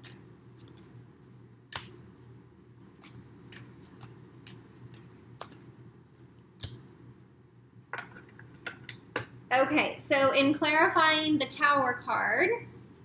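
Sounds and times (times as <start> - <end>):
cards sliding and shuffling: 2.8 - 5.6.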